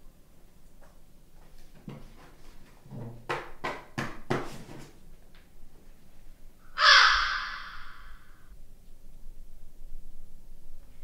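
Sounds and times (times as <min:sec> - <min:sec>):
crow cawing: 0:06.8 - 0:08.4.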